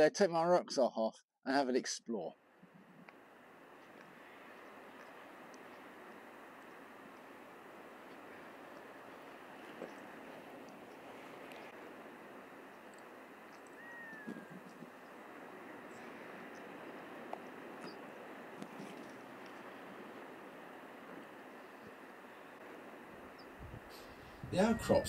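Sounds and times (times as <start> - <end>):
outdoor background hiss: 0.0 - 25.0
thin whistled call: 13.6 - 14.5.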